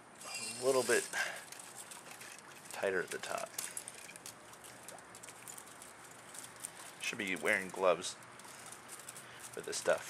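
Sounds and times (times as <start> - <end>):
chicken wire crinkling: 0.0 - 10.0.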